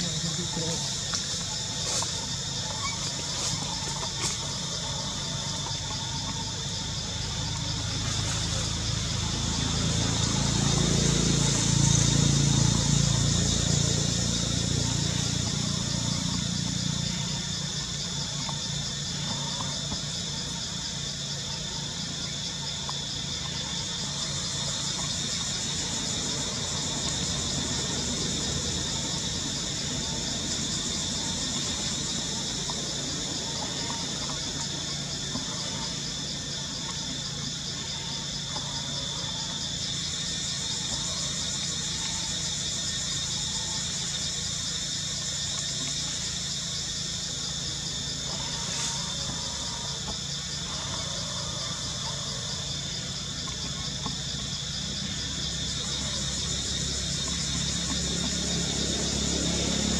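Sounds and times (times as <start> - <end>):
insects buzzing: 0.0 - 59.9
passing vehicle engine rumble: 0.0 - 59.9.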